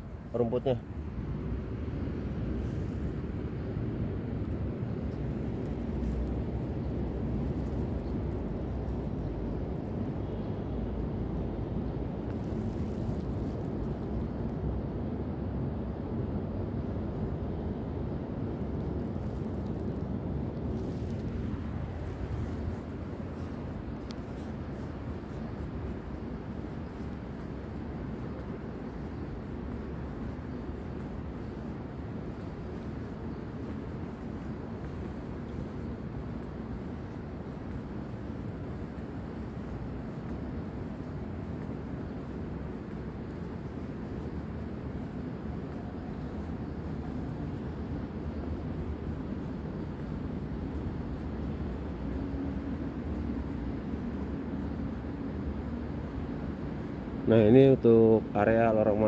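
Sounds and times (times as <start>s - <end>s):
low rumbling background noise: 0.0s - 59.0s.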